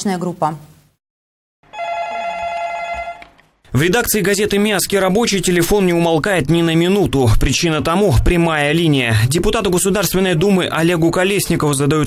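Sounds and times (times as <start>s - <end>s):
desk telephone ringing: 1.7s - 3.5s.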